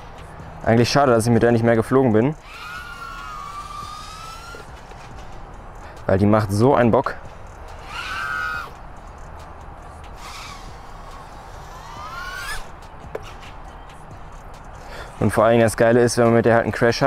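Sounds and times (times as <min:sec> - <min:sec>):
quadcopter motors whining: 0:02.4 - 0:05.5, 0:07.4 - 0:13.6.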